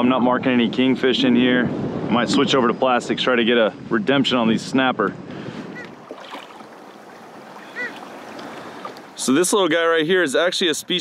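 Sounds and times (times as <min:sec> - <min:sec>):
wind on microphone: 0:00.0 - 0:09.5
water lapping against a hull: 0:05.2 - 0:10.0.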